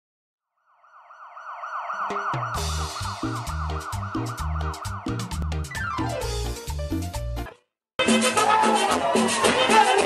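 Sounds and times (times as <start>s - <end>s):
siren wailing: 0.6s - 6.3s.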